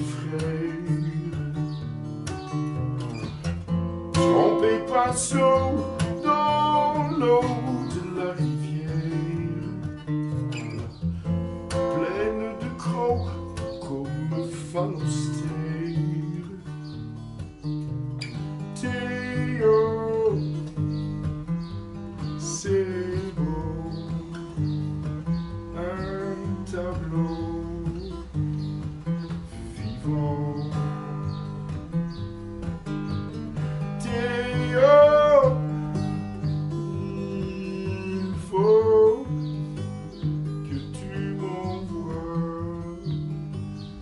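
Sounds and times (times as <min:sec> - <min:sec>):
man singing: 0:00.0 - 0:01.8, 0:04.2 - 0:10.1, 0:11.7 - 0:16.9, 0:18.8 - 0:20.8, 0:22.4 - 0:24.6, 0:25.7 - 0:28.4, 0:29.2 - 0:31.4, 0:33.8 - 0:39.6, 0:40.6 - 0:43.4
acoustic guitar: 0:00.0 - 0:44.0.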